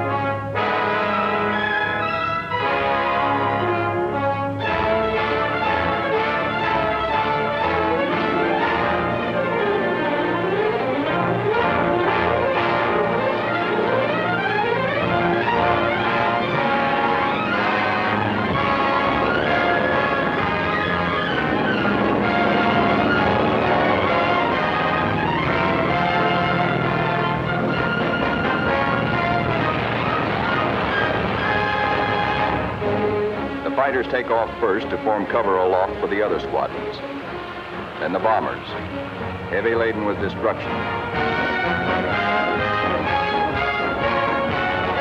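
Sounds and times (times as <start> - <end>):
orchestral music with brass: 0.0 - 45.0.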